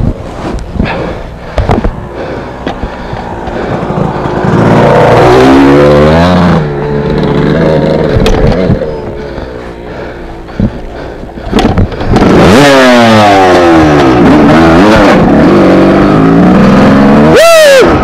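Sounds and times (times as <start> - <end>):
dirt bike engine revving: 0.7 - 18.0
sharp knocks from bike: 1.6 - 2.0, 11.5 - 12.3.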